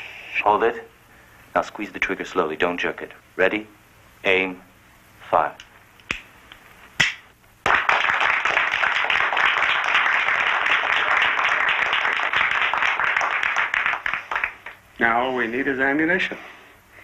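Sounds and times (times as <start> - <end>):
people clapping: 7.0 - 14.8.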